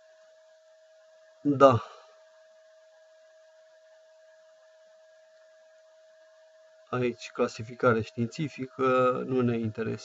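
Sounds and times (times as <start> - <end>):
thin steady whine: 0.0 - 10.0.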